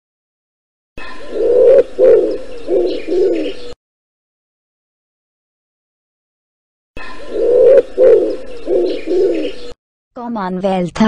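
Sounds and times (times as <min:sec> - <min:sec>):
pigeon cooing: 0:01.0 - 0:03.8, 0:07.0 - 0:09.8.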